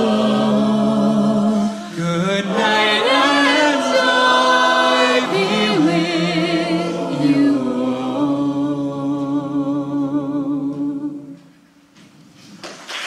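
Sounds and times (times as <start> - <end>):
a cappella choir singing chords: 0.0 - 11.6
high voice sliding and wavering: 1.9 - 8.9.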